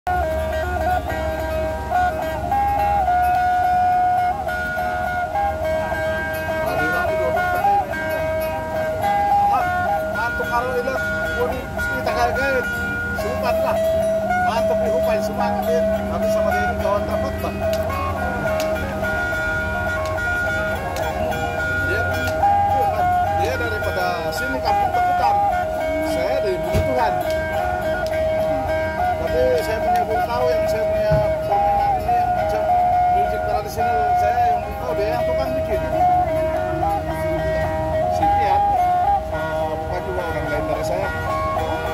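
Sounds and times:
people talking: 0.1s - 41.9s
plucked lutes playing a tune: 0.1s - 41.9s.

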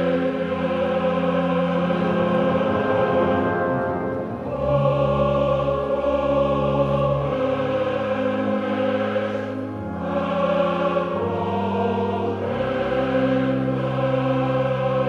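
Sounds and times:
instrumental accompaniment: 0.0s - 15.0s
opera chorus singing: 0.0s - 15.0s.

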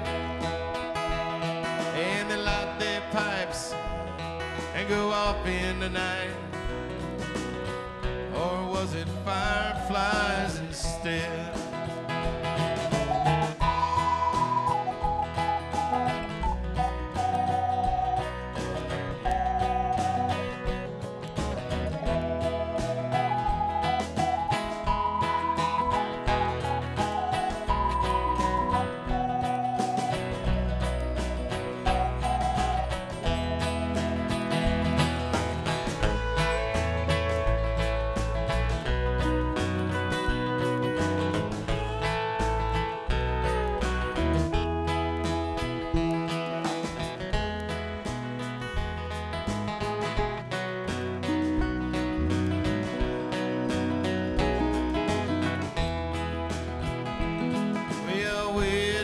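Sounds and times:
acoustic guitar: 0.0s - 59.0s
drums: 0.0s - 59.0s
electric bass: 0.0s - 59.0s
organ: 0.0s - 59.0s.

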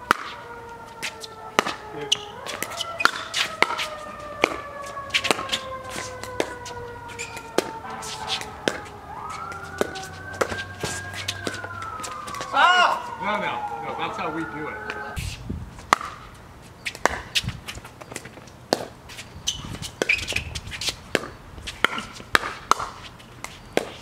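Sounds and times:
siren wailing: 0.0s - 15.2s
paddles striking plastic ball: 4.4s - 4.6s.

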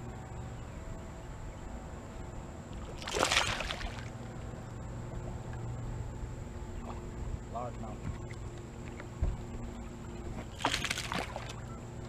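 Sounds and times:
steady low hum: 0.0s - 12.0s
splash on water surface: 3.0s - 4.1s, 10.6s - 11.6s.

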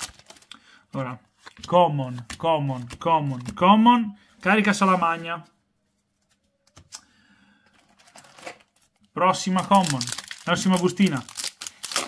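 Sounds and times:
cards and foil pack rustling: 0.0s - 0.6s, 7.7s - 12.0s.

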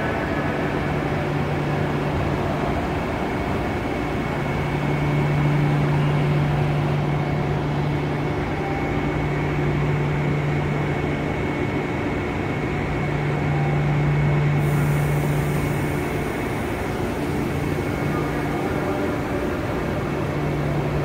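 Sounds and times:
thin high whine: 0.0s - 21.0s
train humming and droning: 0.0s - 21.0s.

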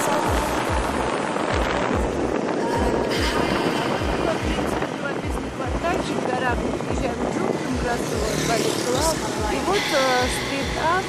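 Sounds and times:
background voices: 0.0s - 11.0s
low thuds: 0.0s - 11.0s
road and traffic noise: 0.0s - 11.0s.

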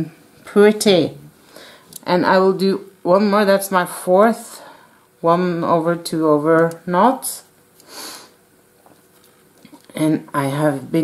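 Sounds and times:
person breathing in: 1.4s - 1.9s.

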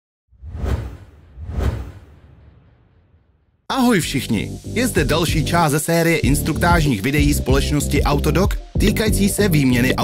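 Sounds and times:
whooshes: 0.3s - 3.6s.

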